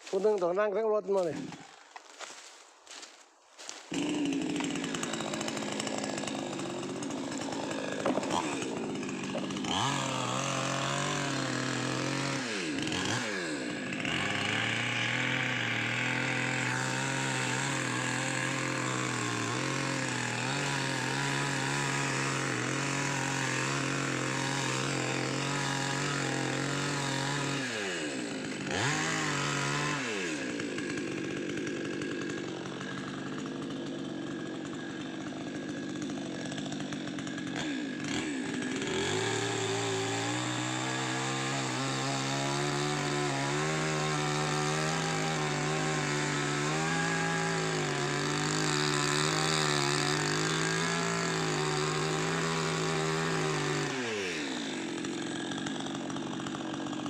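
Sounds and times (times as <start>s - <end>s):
chainsaw running at high revs: 0.0s - 57.0s.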